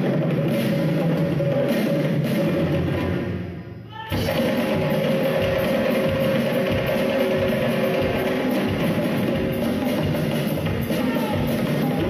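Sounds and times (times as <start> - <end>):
djembes: 0.0 - 3.4, 4.1 - 12.0
drum kit: 0.0 - 3.4, 4.1 - 12.0.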